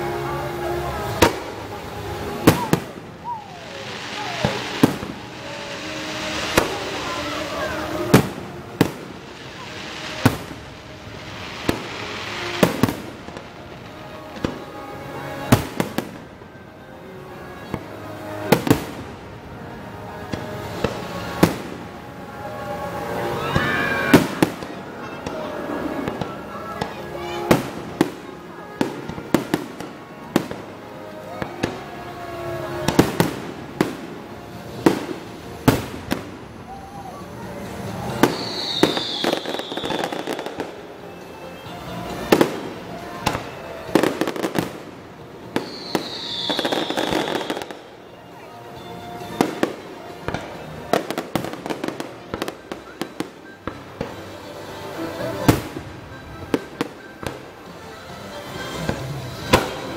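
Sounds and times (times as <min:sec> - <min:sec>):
fireworks bangs: 0:00.0 - 0:16.5, 0:17.6 - 0:36.8, 0:37.5 - 0:48.0, 0:49.0 - 0:54.2, 0:58.4 - 0:59.9
fireworks crackling: 0:00.0 - 0:59.9.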